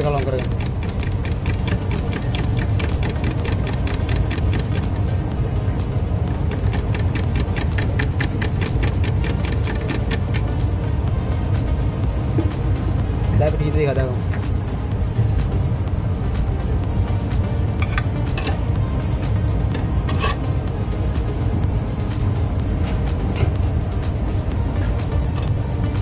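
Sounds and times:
stick tapping metal tin: 0.0 - 5.0, 6.4 - 10.5, 17.8 - 18.6, 19.7 - 20.5
steady low hum: 0.0 - 26.0.

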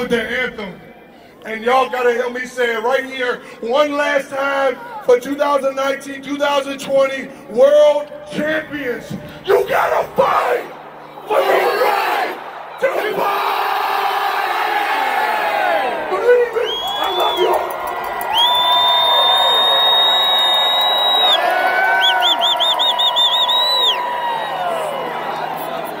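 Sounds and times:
crowd cheering and yelling: 9.2 - 26.0.

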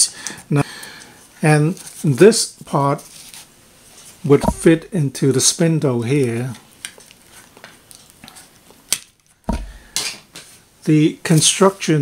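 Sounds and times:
low handling thump: 4.4 - 4.9, 9.5 - 9.8.

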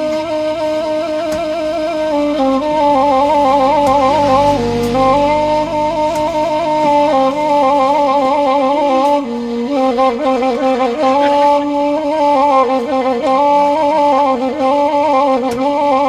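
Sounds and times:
flute-like wind instrument melody: 0.0 - 16.0.

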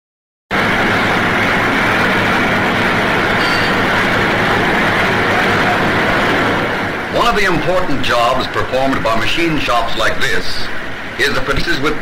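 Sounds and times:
low hum: 0.6 - 8.8
machine tools running: 0.6 - 12.0.

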